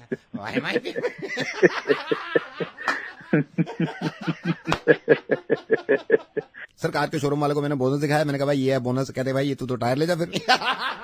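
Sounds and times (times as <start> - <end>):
person laughing: 0.0 - 6.7.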